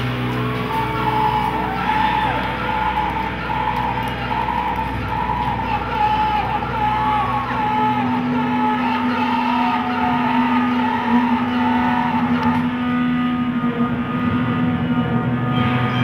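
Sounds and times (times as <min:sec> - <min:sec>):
psychedelic rock band droning: 0:00.0 - 0:16.0.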